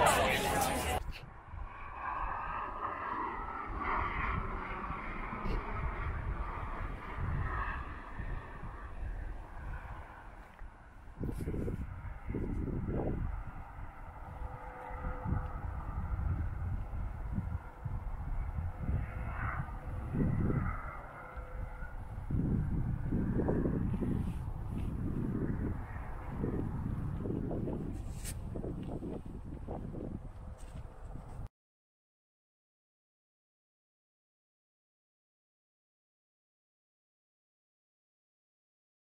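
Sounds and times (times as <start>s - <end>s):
distant engine drone: 0.0s - 31.3s
wind buffeting microphone: 0.0s - 31.5s.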